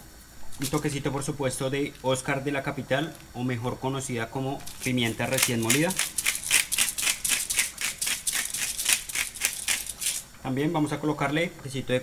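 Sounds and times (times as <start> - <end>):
pepper grinder grinding: 0.5 - 1.0, 4.6 - 10.3.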